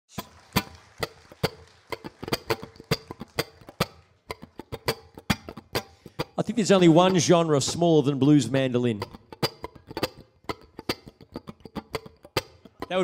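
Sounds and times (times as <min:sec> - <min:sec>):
mandolin picked notes: 0:00.1 - 0:13.0.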